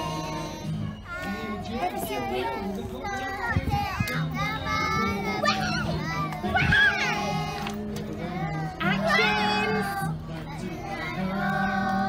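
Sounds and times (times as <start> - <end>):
young children's voices: 0.0 - 11.6.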